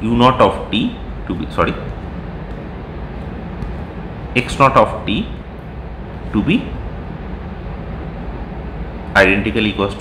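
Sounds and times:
background rumble and hiss: 0:00.0 - 0:10.0.

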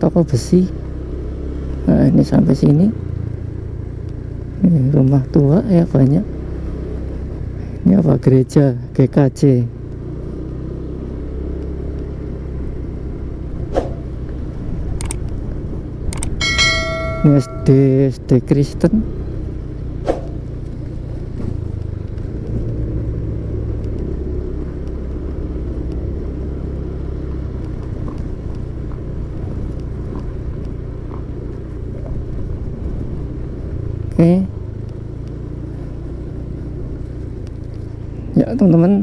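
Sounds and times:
motorcycle engine running: 0:09.6 - 0:39.0.

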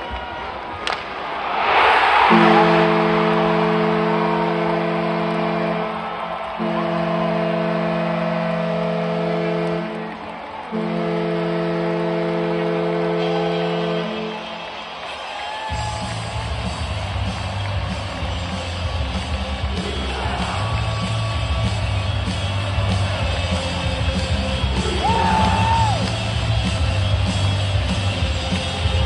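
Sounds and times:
crowd cheering: 0:00.0 - 0:29.0
goal horn blasts: 0:02.2 - 0:14.6.

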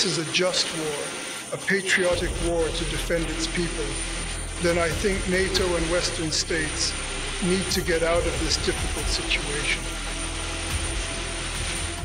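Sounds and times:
aircraft engine noise: 0:00.0 - 0:12.0.

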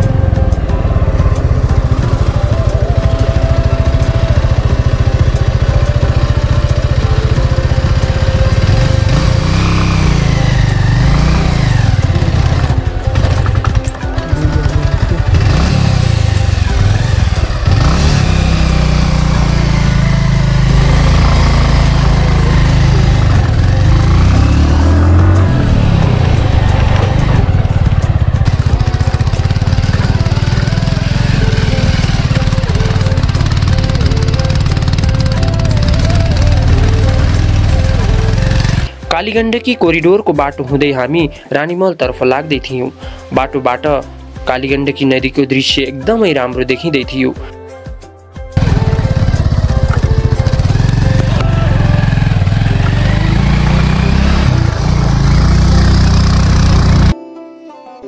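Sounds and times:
motorcycle engine revving: 0:00.0 - 0:39.1, 0:48.6 - 0:57.2
background music: 0:00.0 - 0:58.0.

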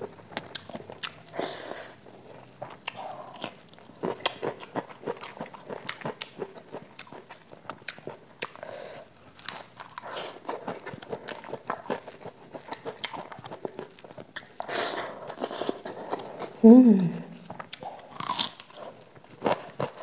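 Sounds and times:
person chewing crunchy food: 0:00.0 - 0:16.6, 0:17.4 - 0:20.0.

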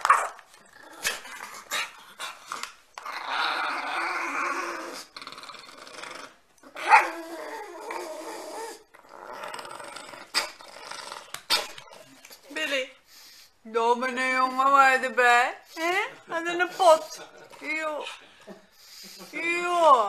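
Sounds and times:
dog growling: 0:00.6 - 0:12.3.

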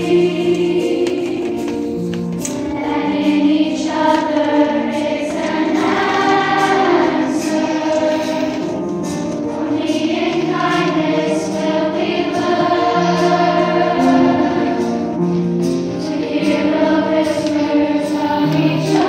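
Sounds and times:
youth choir singing: 0:00.0 - 0:19.0.

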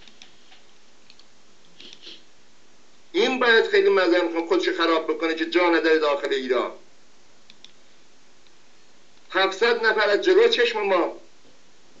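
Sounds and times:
faint soft clicks: 0:00.0 - 0:02.0, 0:07.4 - 0:07.8
steady background hiss: 0:00.0 - 0:12.0.

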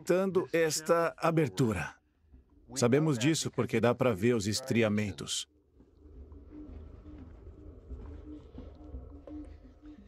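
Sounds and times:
faint low rumble: 0:05.5 - 0:10.0.

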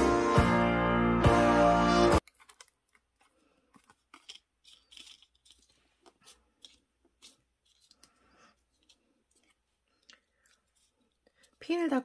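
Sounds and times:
background music: 0:00.0 - 0:02.2
paper rustling: 0:02.2 - 0:11.7.

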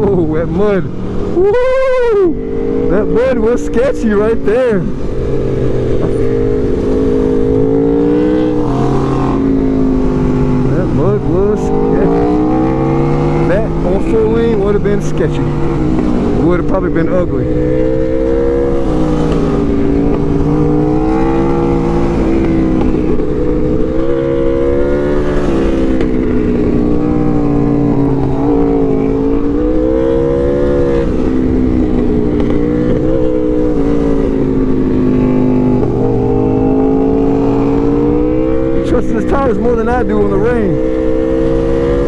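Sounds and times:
motorcycle engine revving: 0:00.0 - 0:42.0.

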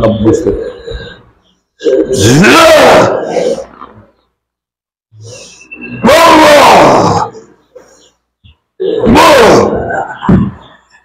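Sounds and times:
man roaring cries: 0:01.8 - 0:03.6, 0:06.0 - 0:07.4, 0:08.8 - 0:10.2.

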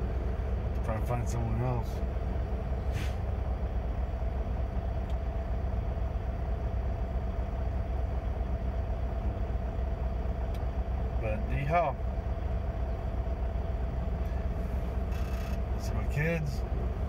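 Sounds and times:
truck diesel engine idling: 0:00.0 - 0:17.0.

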